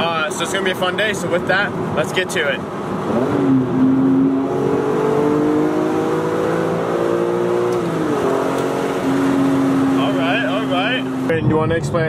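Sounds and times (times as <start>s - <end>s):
car engine accelerating and cruising: 0.0s - 12.0s.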